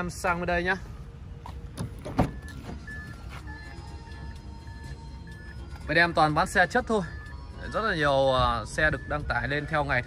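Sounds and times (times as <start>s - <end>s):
music: 1.5s - 10.0s
car door latch clicking: 1.7s - 2.8s
short high beeps: 2.3s - 5.6s.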